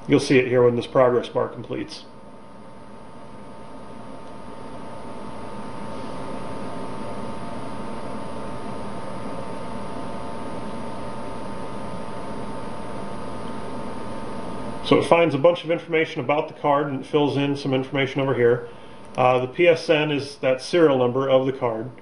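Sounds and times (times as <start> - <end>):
faint tonal hum: 0.0 - 22.0
steady background hiss: 14.6 - 22.0.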